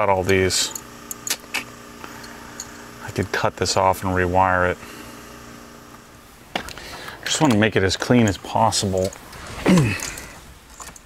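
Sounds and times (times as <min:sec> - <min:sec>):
low electrical hum: 0:00.0 - 0:11.0
light clicks of small parts: 0:09.0 - 0:11.0.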